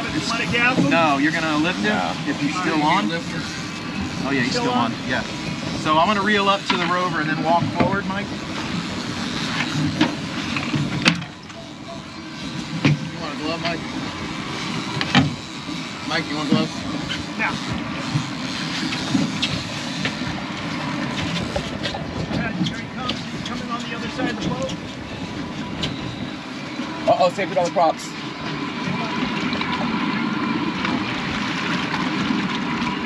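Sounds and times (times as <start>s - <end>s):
outboard motors running: 0.0s - 33.0s
water washing past hull: 0.0s - 33.0s.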